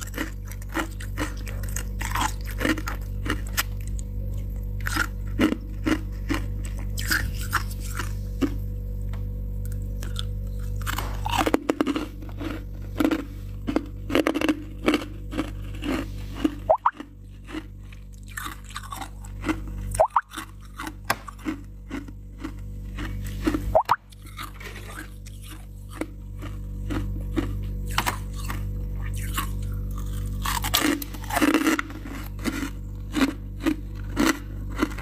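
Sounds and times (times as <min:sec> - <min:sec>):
frost crunching and chewing: 0:00.0 - 0:35.0
low hum: 0:00.0 - 0:35.0.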